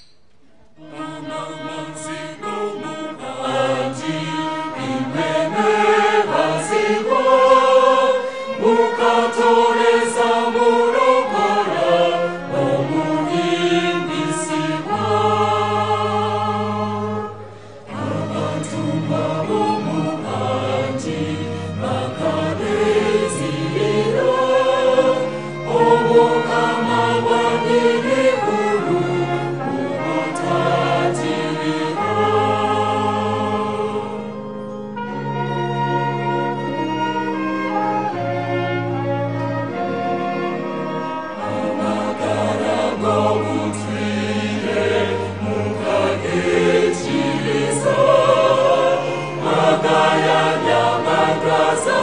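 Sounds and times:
strings accompaniment: 0:00.0 - 0:52.0
choir singing: 0:00.8 - 0:52.0.

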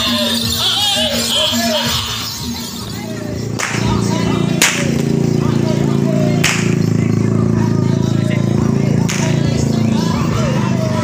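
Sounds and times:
music: 0:00.0 - 0:11.0
whip cracks: 0:03.6 - 0:03.9, 0:04.6 - 0:05.1, 0:06.4 - 0:06.9, 0:09.1 - 0:09.4.

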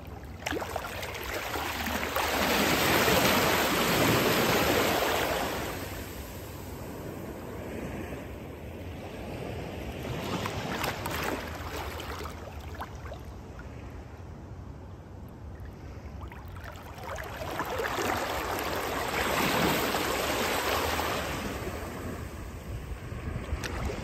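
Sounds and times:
gentle wave washing over sand: 0:00.0 - 0:14.0, 0:15.6 - 0:24.0.

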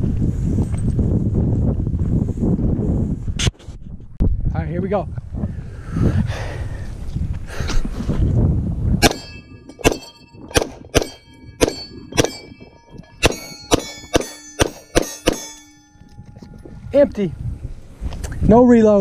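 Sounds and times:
pistol shots: 0:09.0 - 0:12.6, 0:13.2 - 0:15.8
steel plates ringing: 0:09.0 - 0:17.0.

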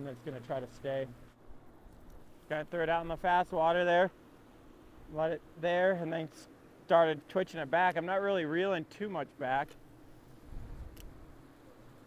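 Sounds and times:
wind buffeting microphone: 0:10.4 - 0:11.3
light click: 0:10.9 - 0:11.2.

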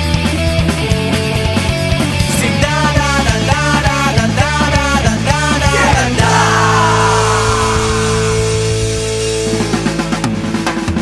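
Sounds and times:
punk rock band chord: 0:00.4 - 0:10.2.

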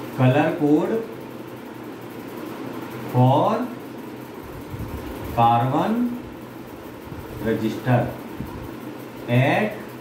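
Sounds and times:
room noise hiss and hum: 0:00.0 - 0:10.0.

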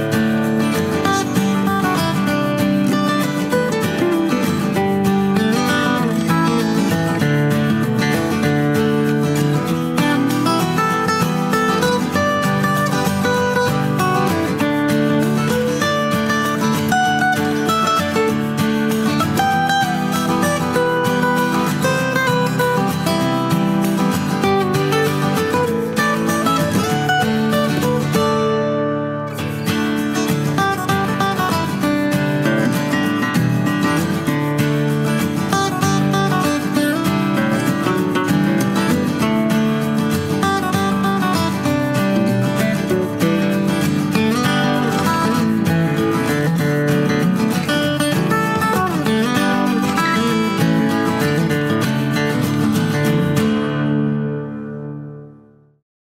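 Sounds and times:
acoustic guitar background music: 0:00.0 - 0:55.8.

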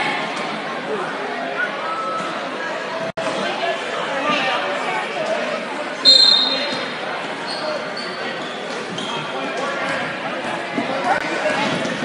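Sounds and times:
crowd voices: 0:00.0 - 0:12.0
referee's whistle: 0:06.0 - 0:06.8.

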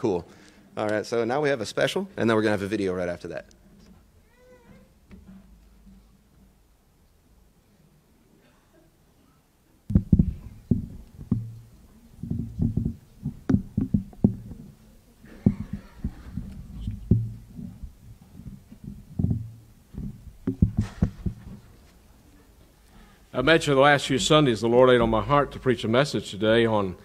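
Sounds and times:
thumps on microphone: 0:09.9 - 0:21.8.

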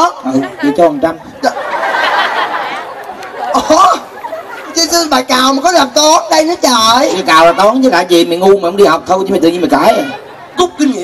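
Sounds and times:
voices through stage microphones: 0:00.0 - 0:11.0.

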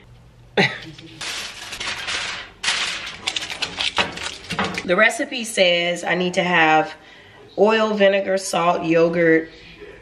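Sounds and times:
aluminum foil crinkling: 0:00.7 - 0:04.9.

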